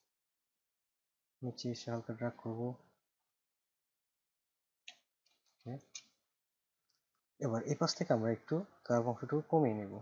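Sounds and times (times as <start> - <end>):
man saying a word softly: 1.4 - 2.7.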